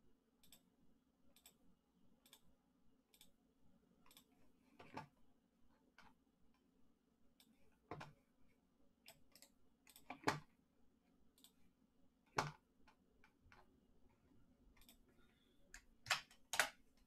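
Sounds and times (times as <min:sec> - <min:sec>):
faint steady hum: 0:00.0 - 0:17.0
mouse and keyboard clicks: 0:09.1 - 0:10.5, 0:12.3 - 0:12.6, 0:15.7 - 0:16.8.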